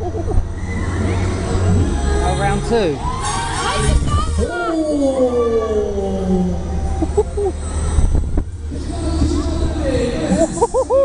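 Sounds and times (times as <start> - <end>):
riders whooping: 0.0 - 1.8
wind rumble on thrill ride: 3.8 - 11.0.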